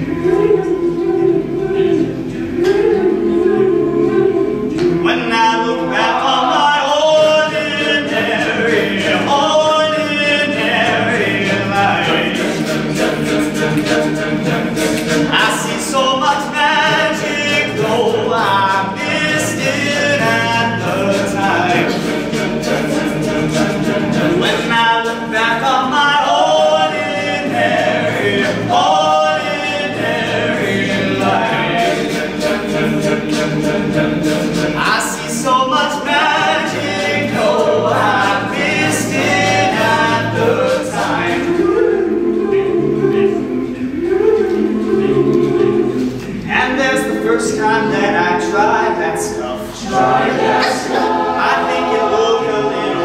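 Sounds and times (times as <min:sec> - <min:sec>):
male a cappella group singing: 0:00.0 - 0:53.0.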